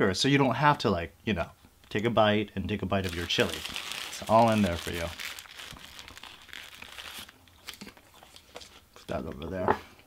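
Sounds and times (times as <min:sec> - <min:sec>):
paper wrapper crinkling: 0:03.0 - 0:08.8.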